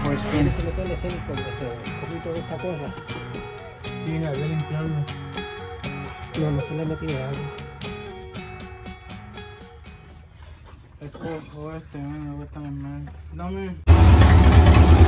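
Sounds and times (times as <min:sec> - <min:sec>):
guitar music with singing: 0:00.0 - 0:10.2
car engine running loudly: 0:13.9 - 0:15.0.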